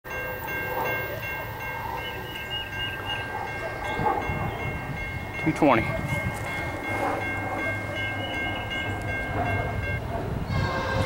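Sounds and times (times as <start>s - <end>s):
crossing warning bell ringing: 0.0s - 11.0s.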